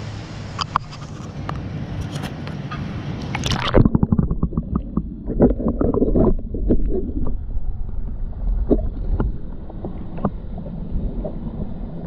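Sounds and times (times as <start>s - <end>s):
underwater water rumbling: 3.3s - 12.0s.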